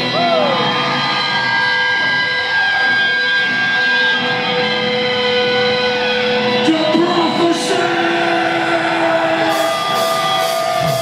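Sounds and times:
distorted electric guitars droning: 0:00.0 - 0:11.0
drum beat: 0:08.0 - 0:11.0.

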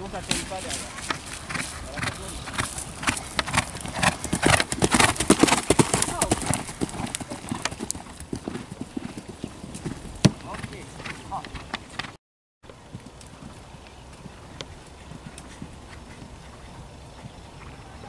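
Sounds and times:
horse hoofbeats on grass: 0:00.0 - 0:18.0.

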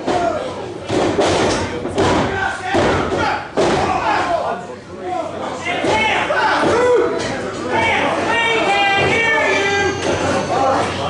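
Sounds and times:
fans shouting: 0:05.6 - 0:11.0.

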